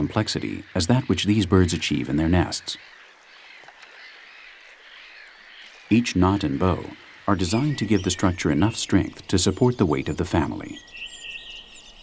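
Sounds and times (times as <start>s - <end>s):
man narrating: 0.0s - 2.9s, 5.9s - 10.8s
distant bird chirps: 0.0s - 12.0s.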